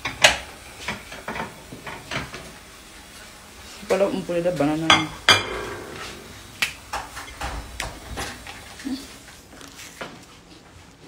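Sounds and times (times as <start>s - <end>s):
ringing pan clank: 5.3s - 6.5s.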